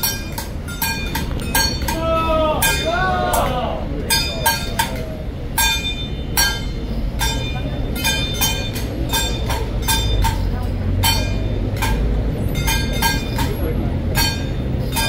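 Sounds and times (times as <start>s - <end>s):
crowd and street noise: 0.0s - 15.0s
sharp metallic percussion strikes: 0.0s - 15.0s.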